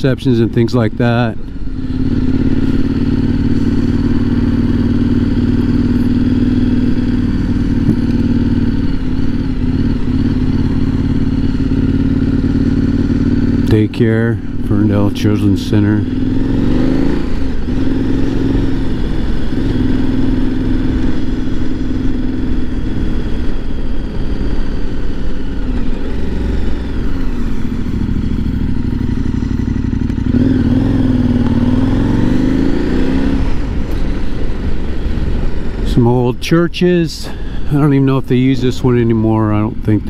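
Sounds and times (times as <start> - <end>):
motorcycle engine revving: 0.0 - 40.0.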